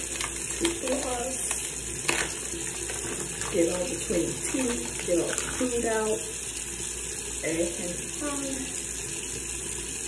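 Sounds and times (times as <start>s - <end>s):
plastic pouch crinkling: 0.0s - 3.6s.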